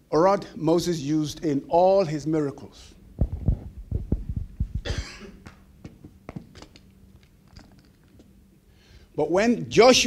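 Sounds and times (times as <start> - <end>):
soft low thumps: 3.1 - 6.5
man coughing into microphone: 4.8 - 5.5.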